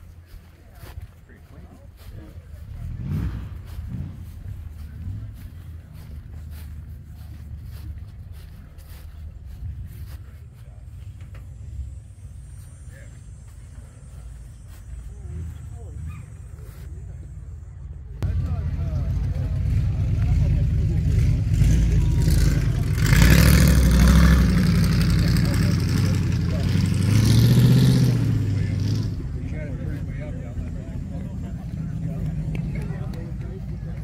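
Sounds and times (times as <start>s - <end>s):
car engine revving and idling: 0.0s - 34.0s.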